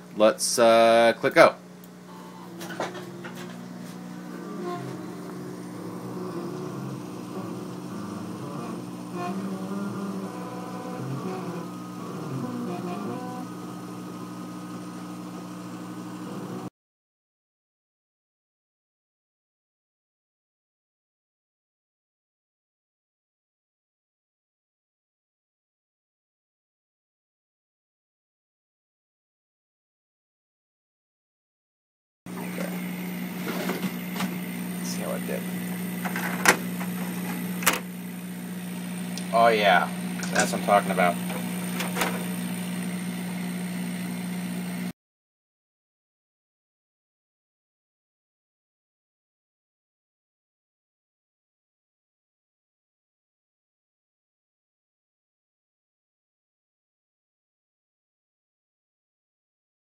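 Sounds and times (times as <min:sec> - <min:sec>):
laser cutter hum: 0:00.0 - 0:16.7, 0:32.3 - 0:44.9
motors whining: 0:01.8 - 0:14.2, 0:32.3 - 0:44.9.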